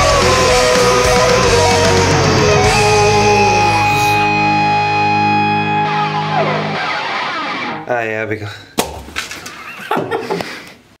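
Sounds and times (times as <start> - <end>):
choppy vocal bursts: 0.0 - 4.4
person crying out high and wavering: 2.6 - 4.4.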